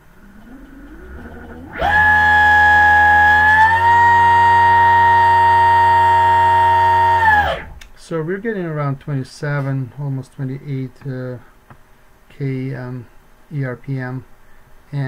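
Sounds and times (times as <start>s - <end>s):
electric motor whine: 0.1s - 7.8s.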